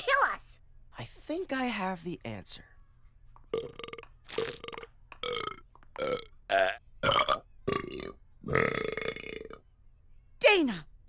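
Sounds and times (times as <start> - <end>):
pitched burps to a tune: 3.5 - 9.6.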